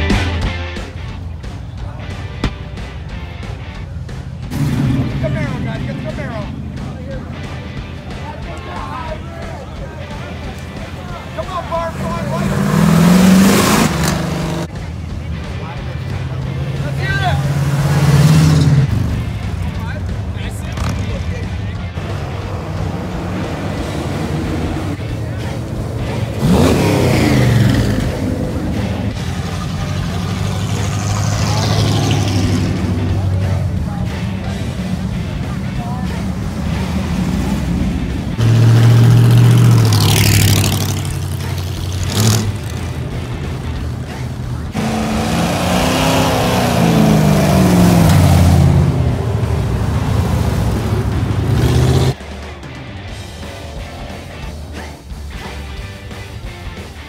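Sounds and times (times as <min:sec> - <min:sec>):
idling traffic rumble: 0:00.0 - 0:57.0
engines revving driving past: 0:00.8 - 0:57.0.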